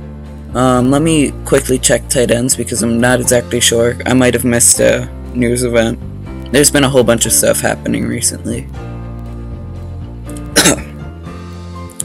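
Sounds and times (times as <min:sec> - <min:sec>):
background music: 0:00.0 - 0:12.0
man coughing: 0:10.5 - 0:11.0.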